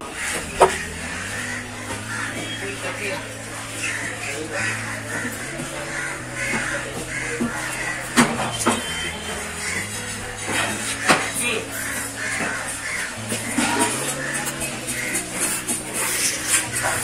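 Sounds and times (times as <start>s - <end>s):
background music with bass: 0.0s - 17.0s.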